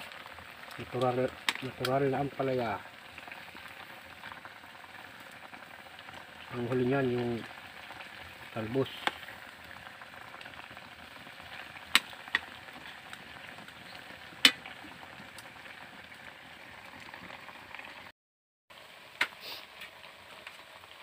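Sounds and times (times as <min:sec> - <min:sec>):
sharp snaps of wood fire: 0:00.0 - 0:02.0, 0:09.0 - 0:10.6, 0:11.5 - 0:15.5, 0:19.2 - 0:20.6
stew simmering with hiss: 0:00.0 - 0:18.1, 0:18.7 - 0:21.0.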